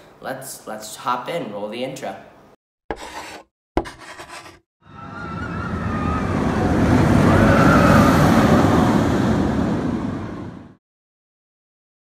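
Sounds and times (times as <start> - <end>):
rushing whoosh: 4.9 - 10.8.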